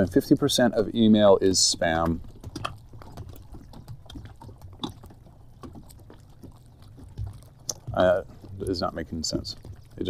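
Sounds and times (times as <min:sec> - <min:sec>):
small waves lapping: 0:00.0 - 0:10.0.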